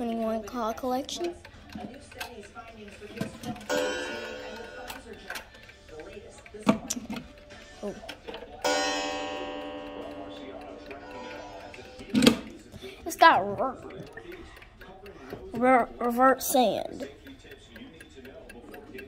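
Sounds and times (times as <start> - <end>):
wall clock striking: 3.2 - 5.5, 8.6 - 13.8.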